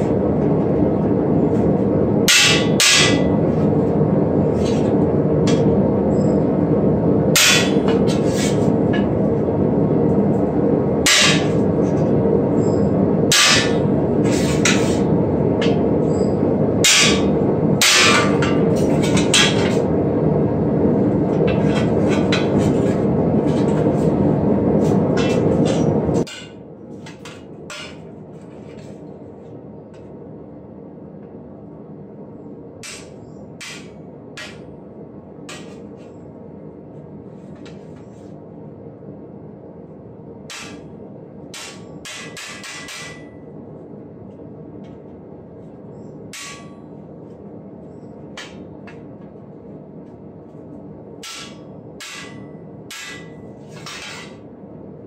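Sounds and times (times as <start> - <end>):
loud steady low rumble: 0.0 - 55.0.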